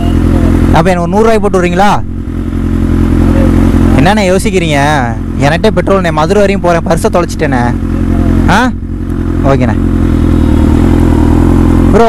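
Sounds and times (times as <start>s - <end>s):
motorcycle engine idling: 0.0s - 12.0s
man talking: 3.3s - 8.8s.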